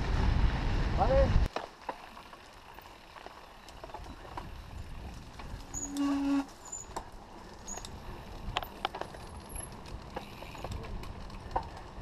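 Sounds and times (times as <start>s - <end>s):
bike rolling on dirt rumble: 0.0s - 12.0s
bike clicking and rattling: 1.5s - 12.0s.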